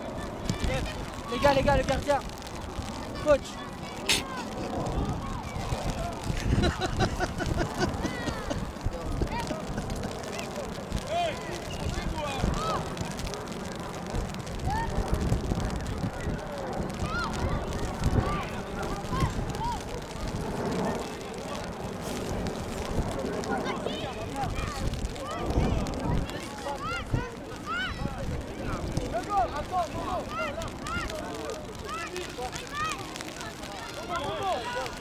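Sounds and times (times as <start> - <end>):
wind buffeting microphone: 0.0 - 32.0
children shouting: 23.6 - 28.3, 29.2 - 35.0.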